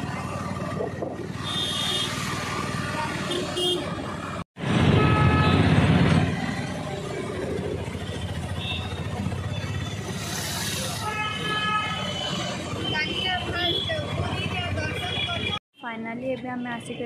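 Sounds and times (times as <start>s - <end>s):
low road rumble: 0.0s - 15.6s.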